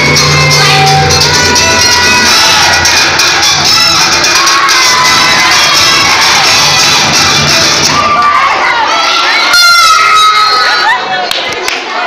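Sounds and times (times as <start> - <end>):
music: 0.0 - 8.2
crowd shouting and cheering: 0.0 - 12.0.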